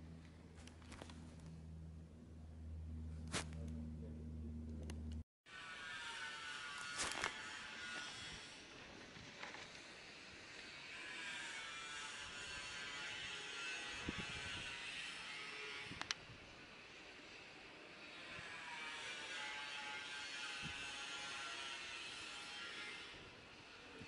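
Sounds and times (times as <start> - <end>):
vehicles passing on street: 0.0 - 5.2.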